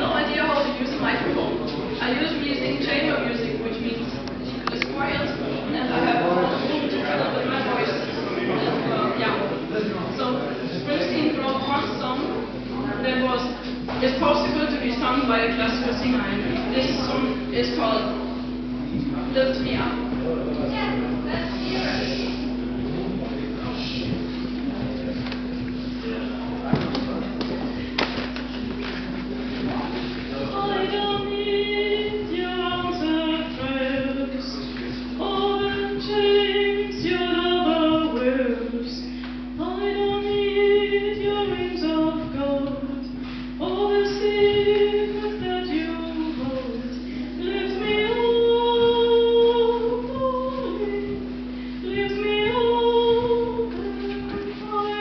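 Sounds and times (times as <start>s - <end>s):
steady low hum: 0.0s - 55.0s
woman singing classical style: 30.6s - 34.6s, 35.2s - 43.0s, 43.6s - 55.0s.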